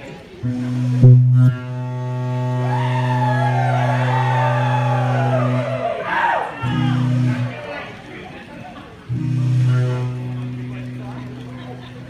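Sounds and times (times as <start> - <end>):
band playing low drone note: 0.4 - 6.0, 6.6 - 7.8, 9.0 - 12.0
higher wavering melody: 0.4 - 6.0, 6.6 - 7.6, 9.1 - 12.0.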